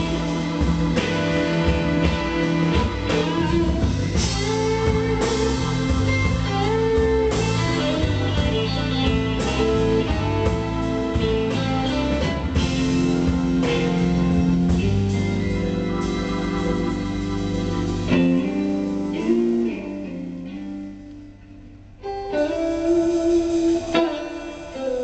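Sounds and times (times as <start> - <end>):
drums: 0.0 - 25.0
electric bass: 0.0 - 25.0
electric guitar with bent notes: 0.0 - 25.0
keyboard: 0.0 - 25.0.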